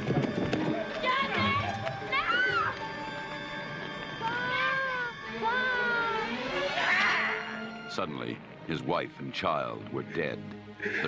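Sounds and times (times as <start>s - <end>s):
film soundtrack music: 0.0s - 11.0s
long wailing cries: 0.7s - 7.9s.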